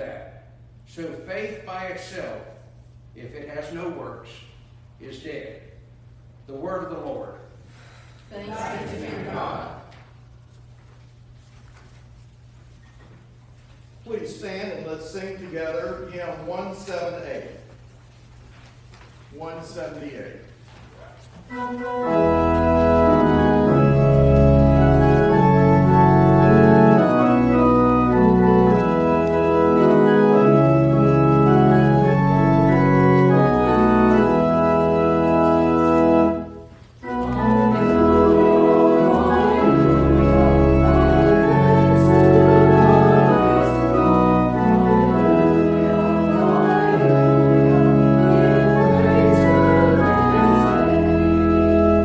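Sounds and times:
organ playing a hymn: 0:00.0 - 0:04.3, 0:05.0 - 0:10.7, 0:14.0 - 0:18.0, 0:19.4 - 0:52.0.

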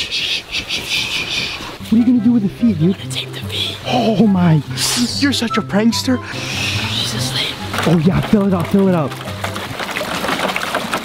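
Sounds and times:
background music: 0:01.8 - 0:10.2
water sloshing into a bucket: 0:07.6 - 0:11.0.

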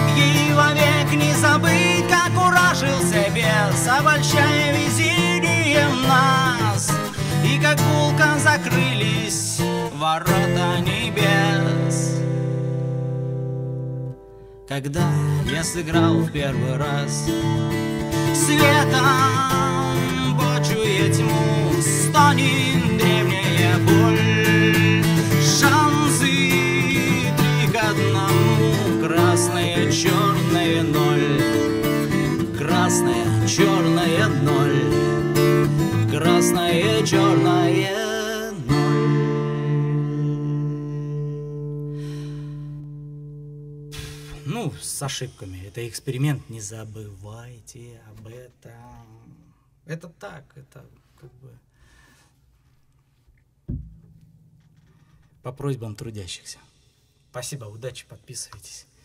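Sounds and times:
man singing: 0:00.0 - 0:12.4, 0:14.7 - 0:41.9
acoustic guitar chord strummed: 0:00.0 - 0:45.4, 0:53.7 - 0:55.5.

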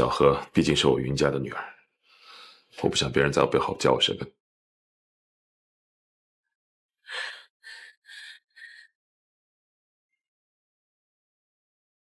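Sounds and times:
woman's shaky breaths: 0:07.1 - 0:08.9.

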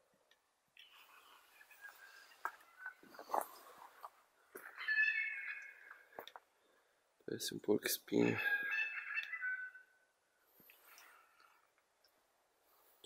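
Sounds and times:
animal wavering call: 0:04.6 - 0:06.0, 0:08.2 - 0:10.0.

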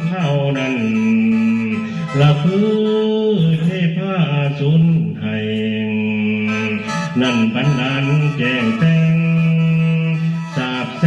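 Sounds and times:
mouth organ drone chord: 0:05.9 - 0:11.0.

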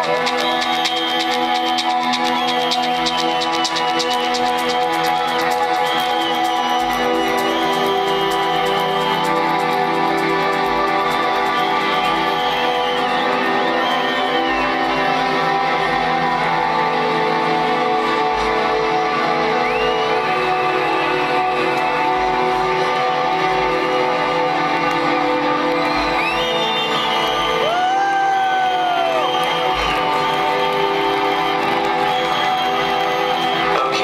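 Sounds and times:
crowd whooping and whistling: 0:00.0 - 0:34.0
electronic dance music: 0:00.0 - 0:34.0.

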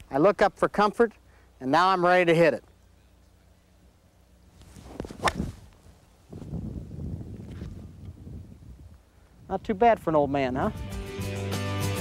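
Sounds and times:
golf club swish: 0:04.6 - 0:06.6
golf club cracking ball: 0:04.9 - 0:05.8.

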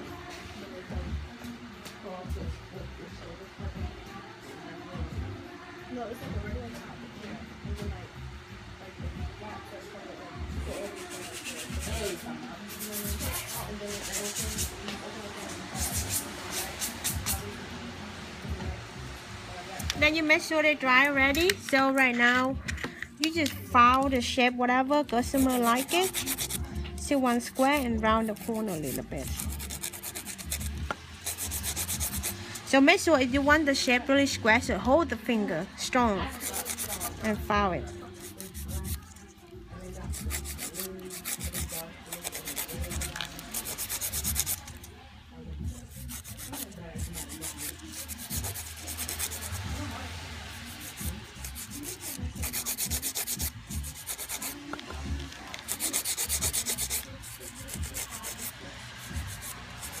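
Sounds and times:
nail file rubbing on nails: 0:10.7 - 0:17.5, 0:25.1 - 0:32.7, 0:36.2 - 0:37.3, 0:38.0 - 0:44.8, 0:45.7 - 0:49.9, 0:50.6 - 1:00.0.

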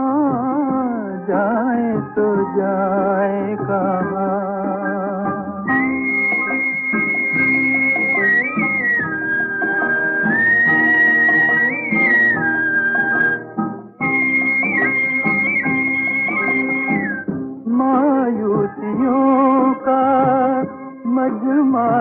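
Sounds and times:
person singing: 0:00.0 - 0:09.0, 0:14.4 - 0:22.0
high held melody line: 0:03.5 - 0:17.5.

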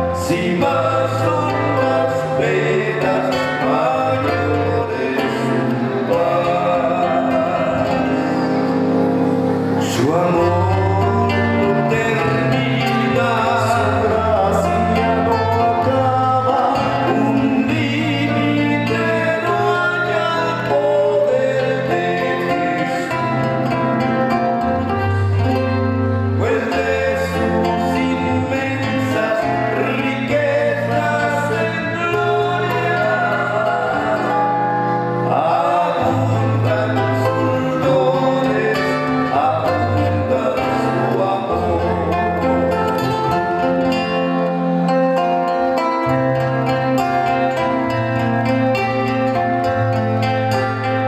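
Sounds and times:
men singing gospel: 0:00.0 - 0:25.6, 0:26.4 - 0:44.3
acoustic guitar: 0:00.0 - 0:51.0
bass line: 0:00.0 - 0:51.0.

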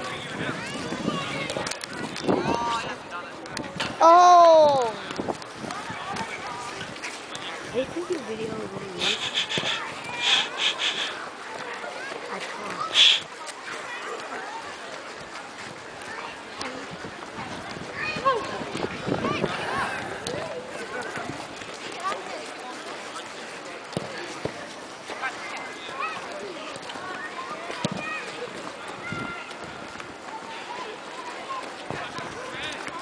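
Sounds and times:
distant people chattering: 0:00.0 - 0:33.0
people chatting: 0:07.4 - 0:15.2.

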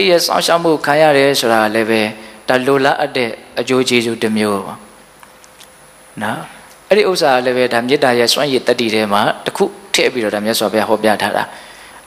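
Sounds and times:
man preaching: 0:00.0 - 0:04.9, 0:06.2 - 0:11.6.

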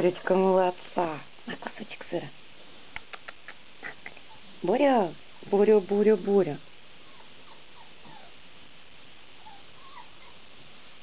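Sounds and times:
background hiss: 0:00.0 - 0:11.0
dog whimpering: 0:03.3 - 0:04.6, 0:07.0 - 0:08.4, 0:09.4 - 0:10.5.

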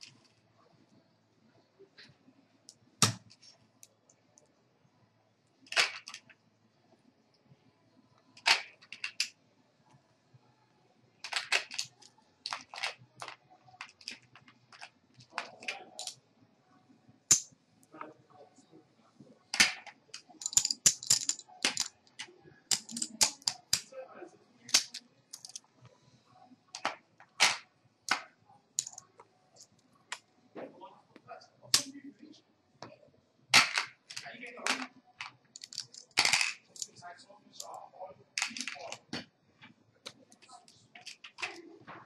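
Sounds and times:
poker chips clacking: 0:11.2 - 0:16.2, 0:19.6 - 0:23.9, 0:24.7 - 0:25.6, 0:28.8 - 0:29.1, 0:33.6 - 0:37.0, 0:38.4 - 0:39.0.

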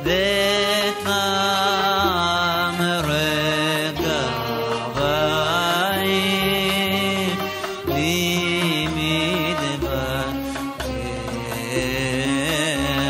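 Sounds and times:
low accompaniment: 0:00.0 - 0:13.0
man singing liturgical melody: 0:00.0 - 0:13.0.

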